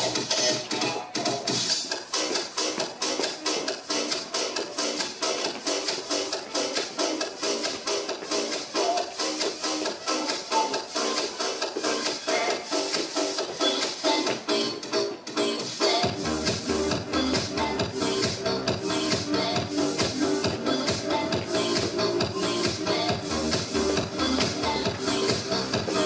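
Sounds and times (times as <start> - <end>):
electronic dance music: 0.0 - 26.0
deep bass: 16.0 - 26.0.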